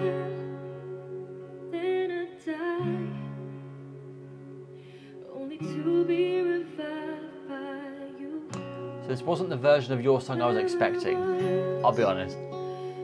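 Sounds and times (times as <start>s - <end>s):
woman singing a ballad: 0.0s - 4.2s, 4.8s - 8.9s, 10.4s - 13.0s
soft instrumental accompaniment: 0.0s - 13.0s.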